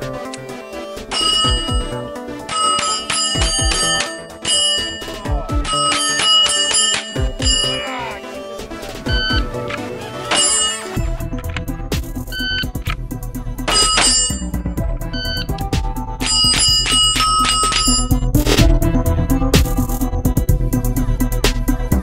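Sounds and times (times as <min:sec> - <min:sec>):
background music: 0:00.0 - 0:22.0
steel plates ringing: 0:01.1 - 0:01.9, 0:02.5 - 0:07.8, 0:10.3 - 0:11.0, 0:13.7 - 0:14.6, 0:16.2 - 0:18.2.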